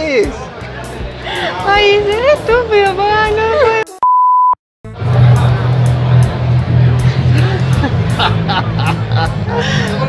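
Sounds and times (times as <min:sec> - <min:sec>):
background music: 0:00.0 - 0:04.0, 0:04.9 - 0:10.0
electronic beep: 0:04.0 - 0:04.6.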